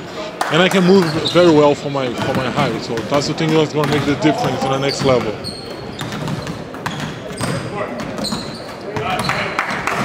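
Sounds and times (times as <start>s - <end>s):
people talking: 0.2s - 5.4s
basketballs bouncing on hardwood: 2.2s - 10.0s.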